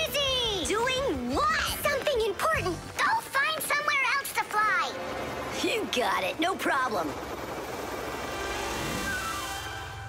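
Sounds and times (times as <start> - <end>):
toy helicopter rotor whirring: 4.4 - 10.0.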